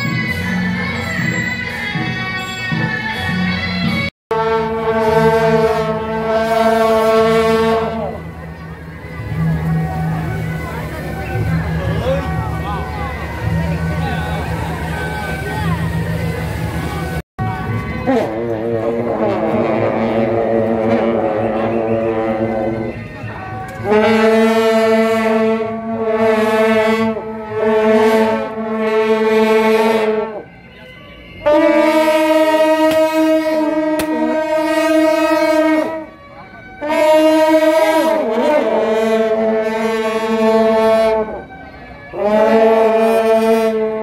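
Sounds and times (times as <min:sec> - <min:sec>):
procession music: 0:00.0 - 0:44.0
long brass horns held note: 0:04.3 - 0:08.3, 0:31.4 - 0:36.1
brass horns droning chord: 0:04.3 - 0:30.6, 0:31.3 - 0:44.0.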